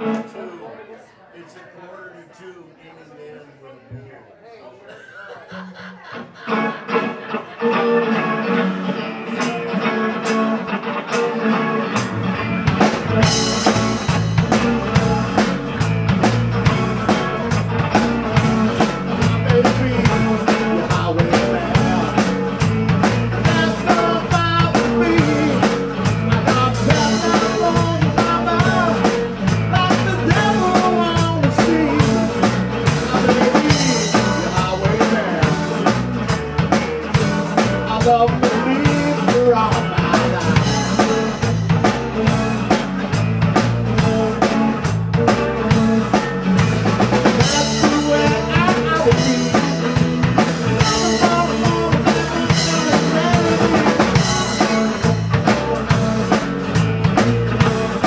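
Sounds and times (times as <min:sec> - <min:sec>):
electric guitar: 0:06.0 - 0:58.0
drum kit: 0:06.7 - 0:58.0
electric bass: 0:06.8 - 0:58.0.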